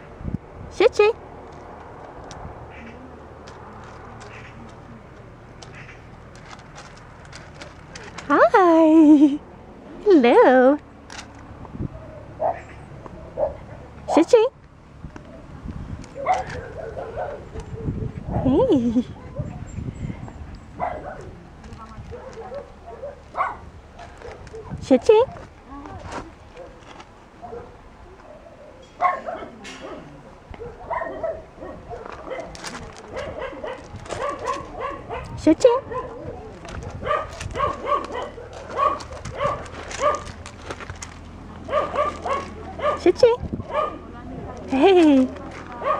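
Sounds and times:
dog yipping: 16.2s - 18.5s, 20.8s - 21.2s, 27.4s - 30.0s, 30.6s - 40.3s, 41.7s - 44.0s.

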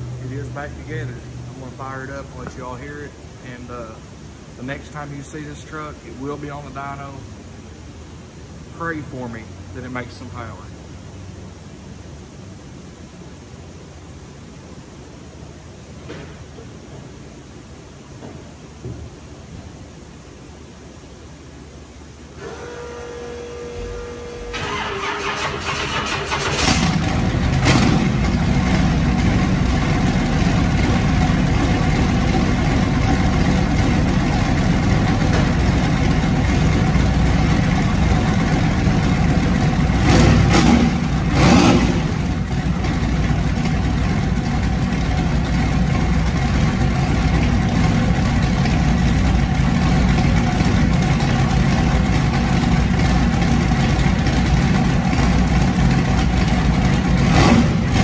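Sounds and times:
car engine starting and idling: 22.4s - 58.0s
engine revving: 22.8s - 31.3s, 39.8s - 43.0s, 55.1s - 58.0s.

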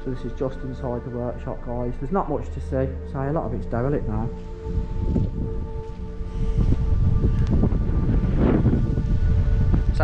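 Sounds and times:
quiet background music: 0.0s - 10.0s
wind buffeting microphone: 3.4s - 10.0s.

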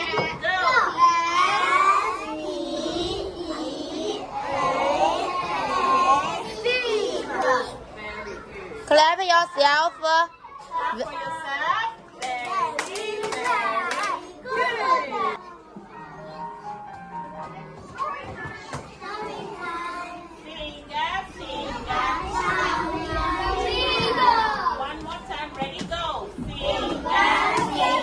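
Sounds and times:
young children talking and calling out: 0.0s - 25.2s.

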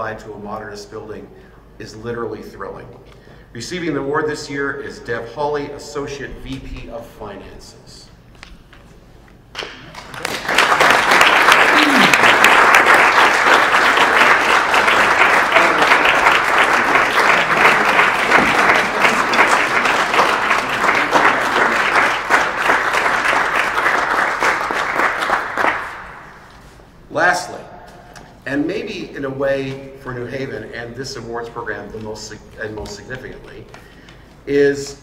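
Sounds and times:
audience applauding: 9.6s - 26.4s.

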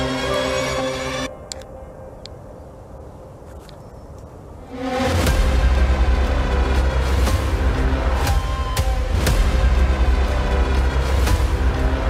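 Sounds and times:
background music: 0.0s - 3.0s, 4.6s - 12.0s
music with heavy bass and beat: 5.2s - 12.0s.

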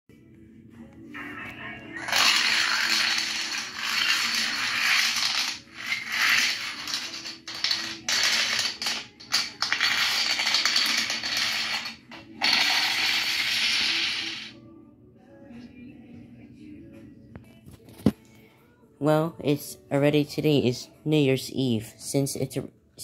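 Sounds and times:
toy dominoes clattering over: 2.0s - 14.6s.

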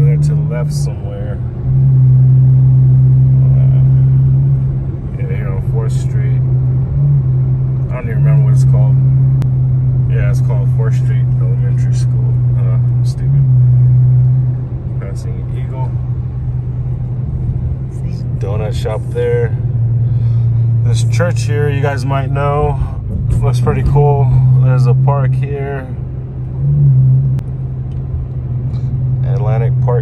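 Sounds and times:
car engine and road drone: 0.0s - 30.0s.

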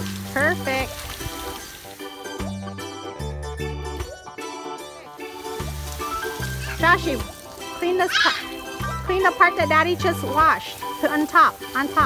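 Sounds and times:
hose nozzle spraying water: 0.0s - 2.5s, 5.1s - 12.0s
background music with bass: 0.0s - 12.0s.

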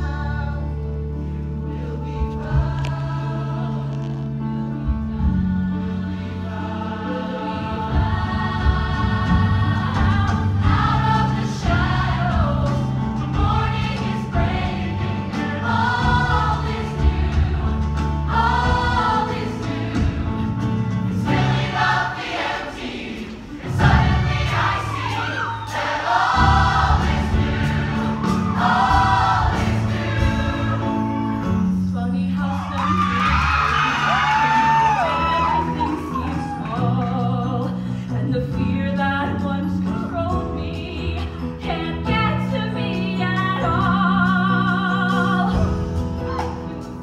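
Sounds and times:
choir of teenage voices singing: 0.0s - 31.6s
live band accompaniment: 2.2s - 47.0s.

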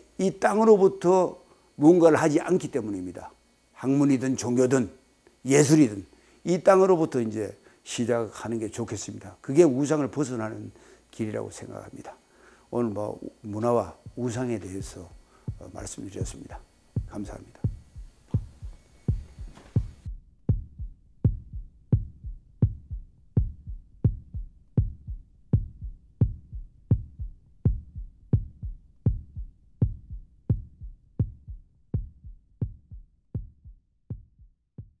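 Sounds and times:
slow low heartbeat thumps: 14.0s - 35.0s.

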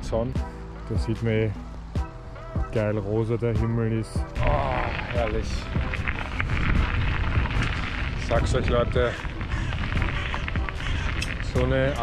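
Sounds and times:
wind rumble on microphone: 4.3s - 12.0s
small rattles and ticks: 4.7s - 12.0s.

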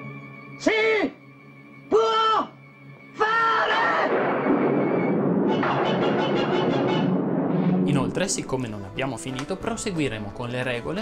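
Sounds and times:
dramatic orchestral music: 3.9s - 11.0s
thunder rumbling: 4.1s - 8.6s.

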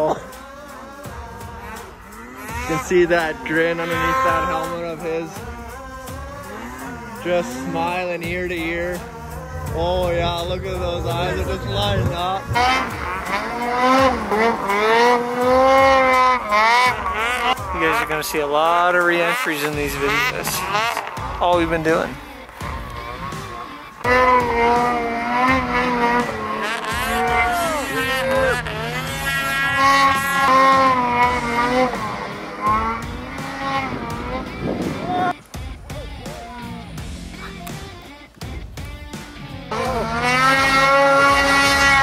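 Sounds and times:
snowmobile engine revving: 0.0s - 35.4s, 36.2s - 42.0s.

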